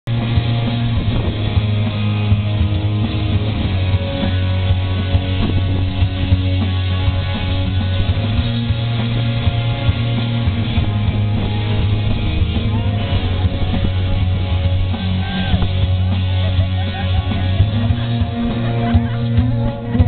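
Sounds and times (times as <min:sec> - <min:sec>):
rock band playing live: 0:00.1 - 0:20.0.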